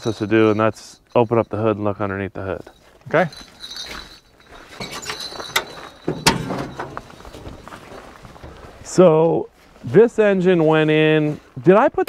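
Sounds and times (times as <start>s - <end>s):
soft handling noise: 2.5s - 11.6s
metallic latch clicks and clanks: 5.0s - 7.2s.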